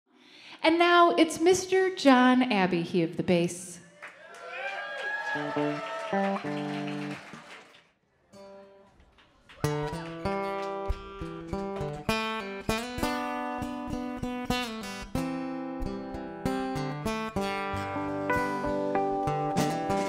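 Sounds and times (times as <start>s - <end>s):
people talking: 0.6s - 3.8s
acoustic guitar strumming: 9.6s - 20.0s
low plucked notes: 15.8s - 20.0s.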